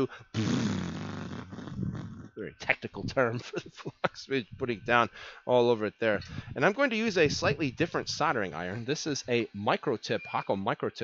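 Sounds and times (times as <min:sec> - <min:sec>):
man blowing a raspberry: 0:00.0 - 0:02.5.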